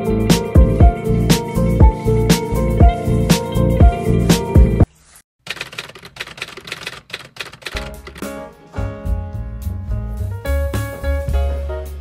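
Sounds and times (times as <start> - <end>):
music: 0.0 - 4.9, 7.8 - 12.0
typewriter key clicks: 5.5 - 8.3.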